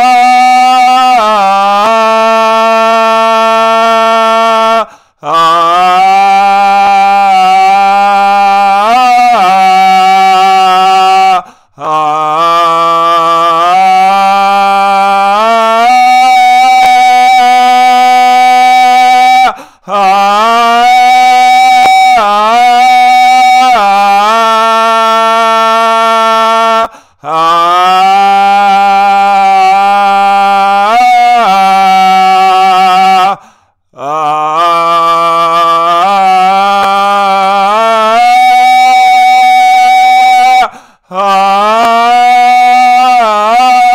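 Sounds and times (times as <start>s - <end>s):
singer breathing: 4.9s - 5.2s, 11.4s - 11.8s, 19.5s - 19.9s, 26.9s - 27.3s, 33.3s - 34.0s, 40.7s - 41.2s.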